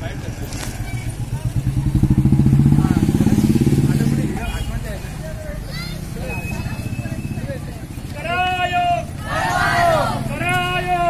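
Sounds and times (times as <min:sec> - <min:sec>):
street voices: 0:00.0 - 0:11.0
motorcycle engine passing by: 0:00.2 - 0:08.2.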